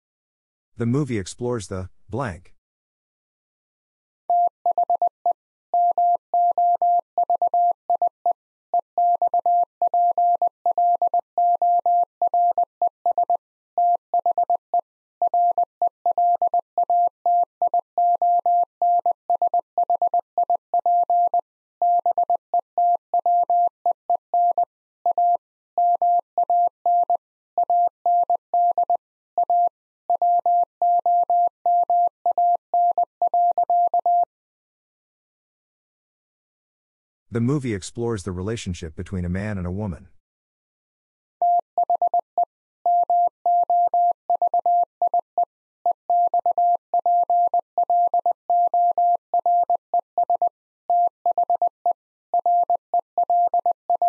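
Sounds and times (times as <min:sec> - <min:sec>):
morse code beeps: 0:42.9 - 0:45.3, 0:46.1 - 0:51.7, 0:52.4 - 0:54.0.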